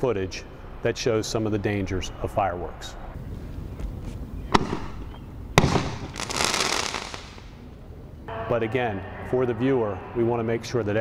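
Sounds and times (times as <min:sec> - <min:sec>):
fireworks bangs: 0:04.5 - 0:07.6
fireworks hissing crackle: 0:05.6 - 0:07.6.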